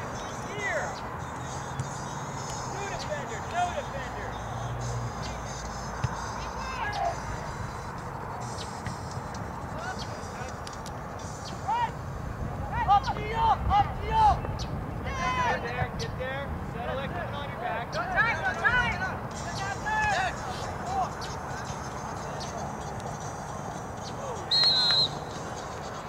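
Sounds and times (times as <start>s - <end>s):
players and spectators shouting: 0.0s - 8.4s, 11.4s - 16.0s, 16.7s - 23.0s, 24.0s - 25.5s
outdoor background noise: 0.0s - 26.0s.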